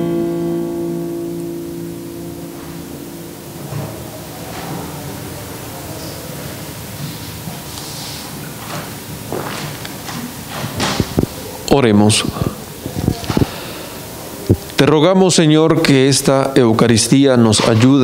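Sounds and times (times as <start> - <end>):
acoustic guitar chord ringing: 0.0 - 5.8
soft knocks and rustles: 6.4 - 11.4.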